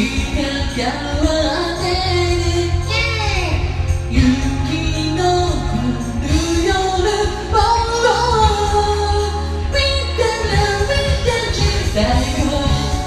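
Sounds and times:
backing track with bass line: 0:00.0 - 0:13.0
woman singing pop song: 0:00.0 - 0:13.0.

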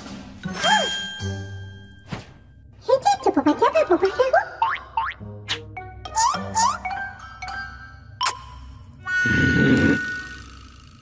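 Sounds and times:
boing sound effects: 0:04.6 - 0:05.2.

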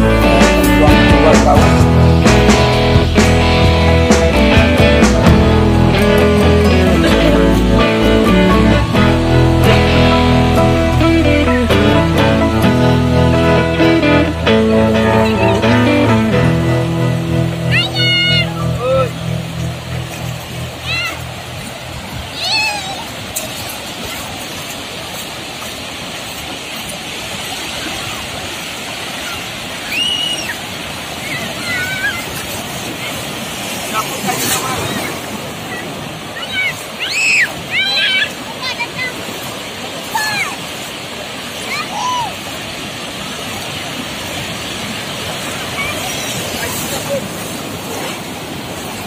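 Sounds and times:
waves breaking on a beach: 0:00.0 - 0:49.0.

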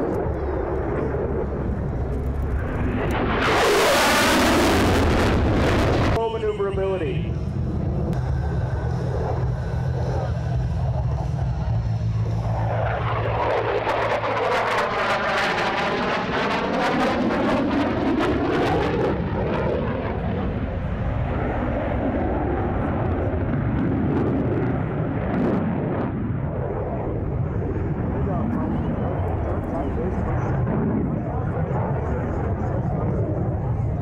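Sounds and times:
fighter jet passing: 0:00.0 - 0:34.0.

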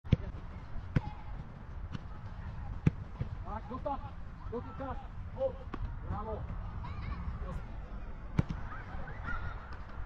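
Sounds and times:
football being kicked: 0:00.1 - 0:02.1, 0:02.7 - 0:03.4.

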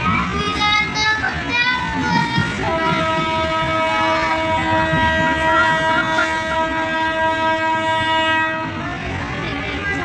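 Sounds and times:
train running on rails: 0:00.0 - 0:10.0
train horn: 0:02.6 - 0:09.0.

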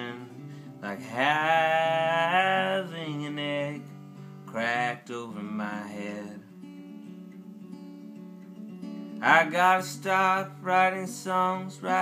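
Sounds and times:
man singing: 0:00.0 - 0:06.6, 0:09.2 - 0:12.0
acoustic guitar strumming chords: 0:00.0 - 0:12.0.

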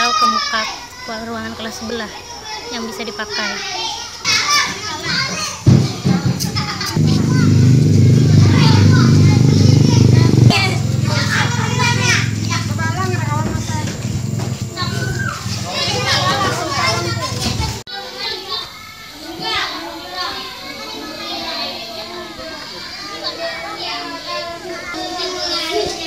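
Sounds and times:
children chattering and calling out: 0:00.0 - 0:26.0
low steady rumble: 0:07.0 - 0:17.4.

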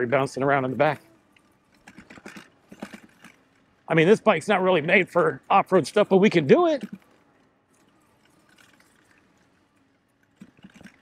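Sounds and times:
electric bike rattling over rough ground: 0:00.0 - 0:11.0
battery bouncing in its mount: 0:01.3 - 0:03.6, 0:10.2 - 0:11.0.

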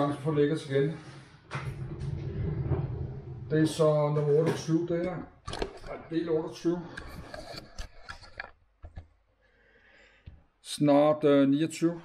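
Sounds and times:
camera handling rubbing and scraping: 0:06.9 - 0:09.1.

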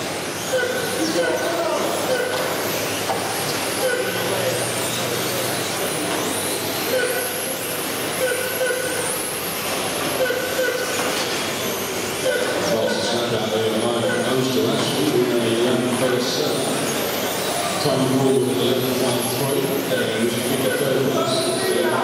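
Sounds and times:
rc car motors whining: 0:00.0 - 0:22.0
short steady tones: 0:06.9 - 0:09.2.

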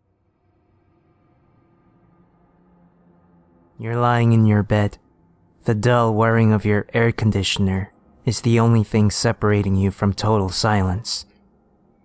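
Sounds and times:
faint low drone: 0:00.0 - 0:12.0.

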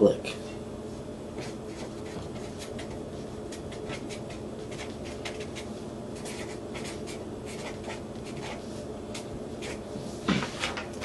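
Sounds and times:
pen scratching on paper: 0:01.4 - 0:09.8.

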